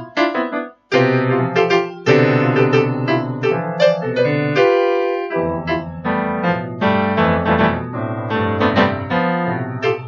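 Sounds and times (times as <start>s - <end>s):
solo piano piece: 0.0s - 10.0s.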